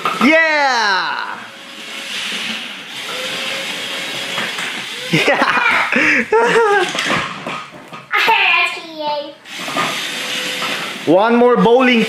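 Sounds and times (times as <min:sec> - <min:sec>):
child's excited cry: 0:04.9 - 0:06.2.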